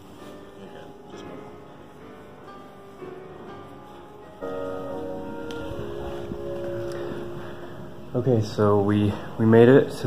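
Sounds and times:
large ensemble sustained chords: 0.6s - 10.0s.

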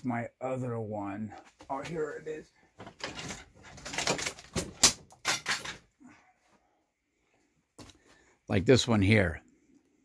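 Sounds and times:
objects handled on a workbench: 2.7s - 6.0s.

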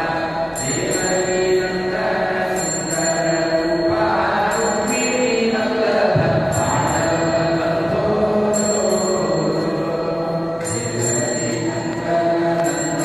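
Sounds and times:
devotional mantra chanting with music: 0.0s - 13.0s
high metallic ringing: 0.0s - 13.0s.

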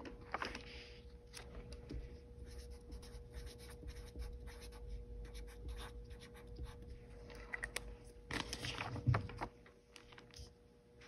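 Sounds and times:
marker writing on paper: 2.4s - 6.9s.

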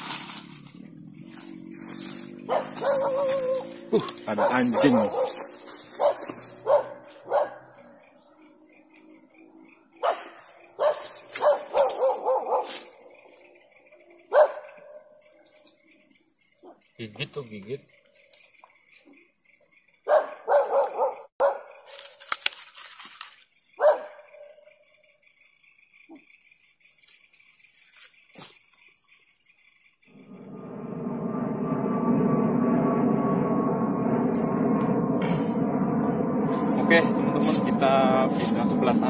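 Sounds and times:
steady motor drone: 0.0s - 16.0s, 30.1s - 39.0s.

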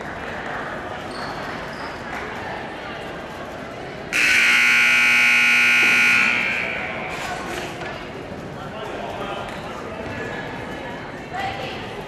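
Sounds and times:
crowd hubbub in a gym: 0.0s - 12.0s
scoreboard horn buzz: 4.2s - 7.1s.

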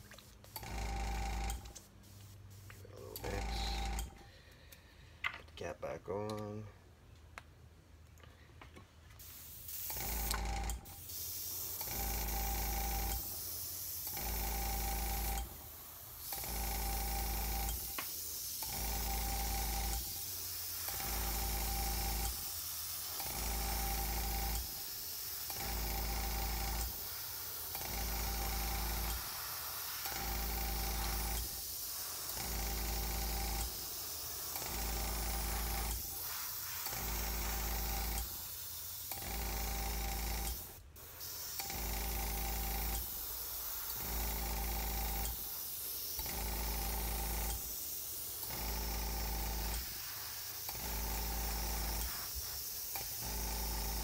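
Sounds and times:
compressor humming: 0.0s - 4.6s
airbrush hissing: 9.2s - 39.2s, 40.2s - 54.0s.

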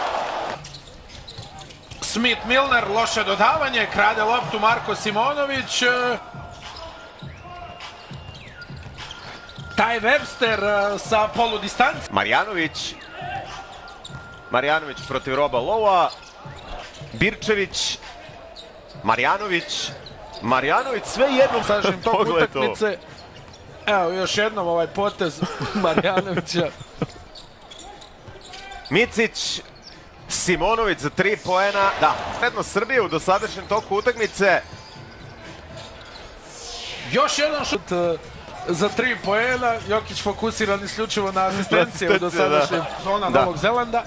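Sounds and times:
arena noise: 0.0s - 44.0s
commentator speaking: 20.4s - 22.9s, 37.0s - 44.0s.

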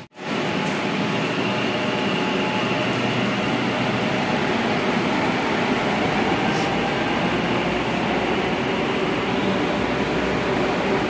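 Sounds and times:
metro station mechanical rumble: 0.0s - 11.0s.

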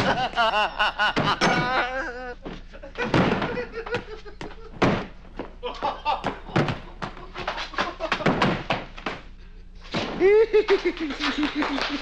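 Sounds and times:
man laughing: 0.0s - 4.8s, 5.6s - 8.3s, 10.2s - 12.0s
thunks and knocks: 2.5s - 5.5s, 6.2s - 7.2s, 7.8s - 9.3s.

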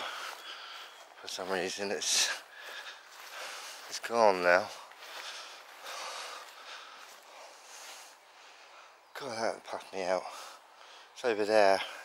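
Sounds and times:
soft breathing: 0.0s - 1.4s, 2.0s - 9.1s, 10.2s - 11.2s.

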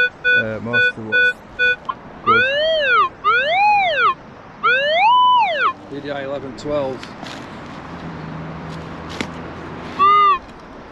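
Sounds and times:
metal detector tone rising and falling: 10.0s - 10.4s.

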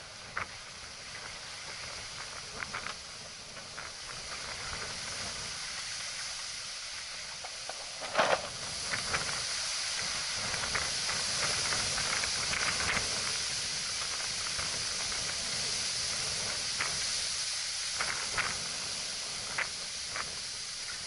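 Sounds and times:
wind and water rushing: 0.0s - 21.0s.

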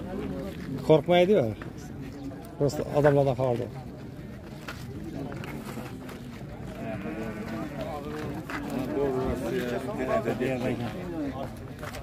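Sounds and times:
crowd voices talking: 0.0s - 12.0s.

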